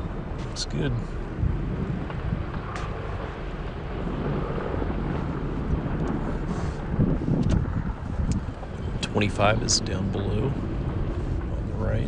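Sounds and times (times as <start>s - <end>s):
vehicle engine and tyres rumbling: 0.0s - 12.0s
wind buffeting microphone: 0.0s - 12.0s.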